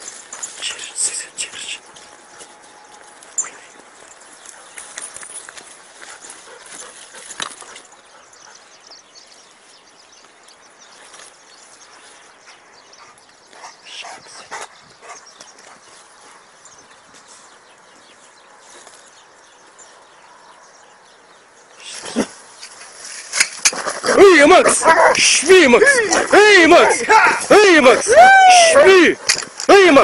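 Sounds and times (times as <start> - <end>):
footsteps rustling through dry brush: 0.0 - 20.2, 22.0 - 29.6.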